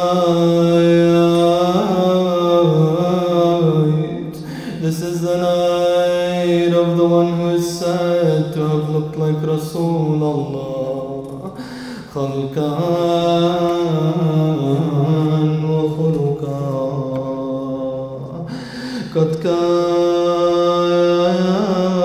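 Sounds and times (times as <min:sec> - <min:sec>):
man chanting a lament: 0:00.0 - 0:22.0.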